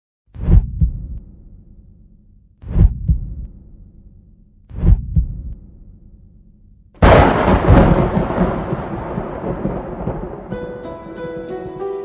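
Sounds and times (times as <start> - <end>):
heartbeat thumps: 0.3 - 1.6, 2.6 - 6.0.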